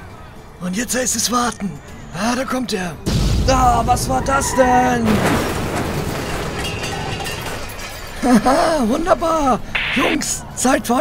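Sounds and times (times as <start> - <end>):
explosion noisy rush: 3.1 - 6.6.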